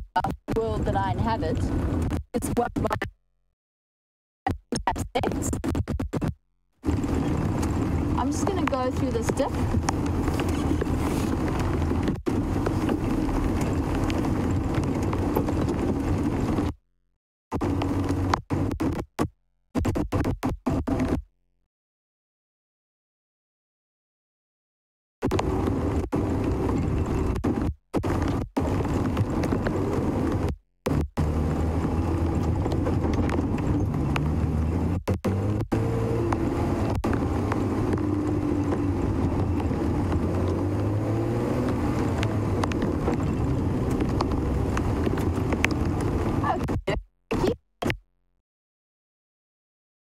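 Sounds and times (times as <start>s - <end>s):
vehicle engine on dirt track: 0.5s - 2.2s, 6.8s - 16.8s, 17.5s - 19.0s, 20.2s - 21.2s, 25.2s - 48.0s.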